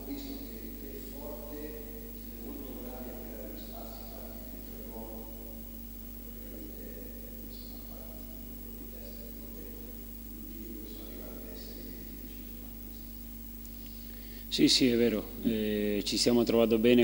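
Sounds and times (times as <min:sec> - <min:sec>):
distant man's voice: 0:00.0 - 0:13.2, 0:14.5 - 0:17.0
steady electrical hum: 0:00.0 - 0:17.0.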